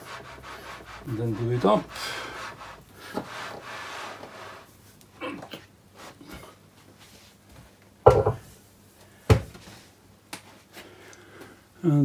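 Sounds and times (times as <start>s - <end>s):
sharp knock on workbench: 8.1s - 8.4s.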